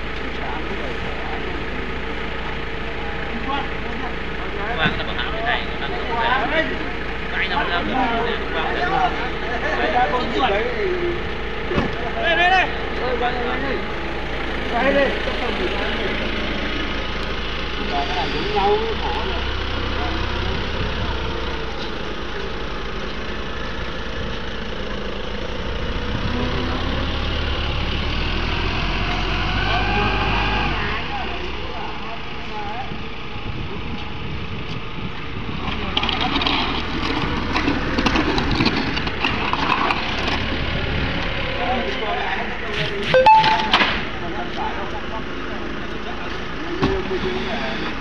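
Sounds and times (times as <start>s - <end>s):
people talking: 0.0s - 23.6s, 29.1s - 34.2s, 41.4s - 48.0s
forklift engine running: 0.0s - 48.0s.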